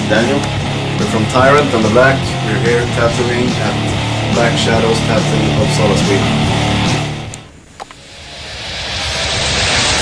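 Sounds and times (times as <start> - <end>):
rumbling hissing noise: 0.0 - 10.0.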